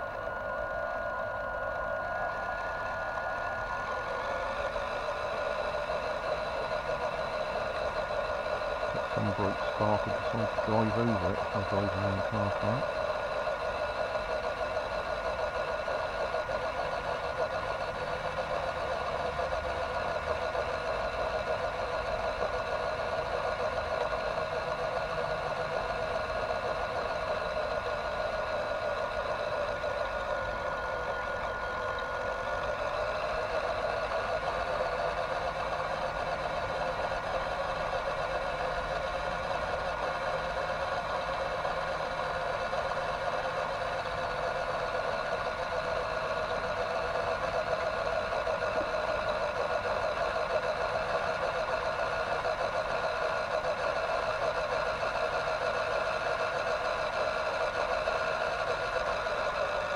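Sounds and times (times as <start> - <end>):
toy truck motor whining: 0.0 - 59.9.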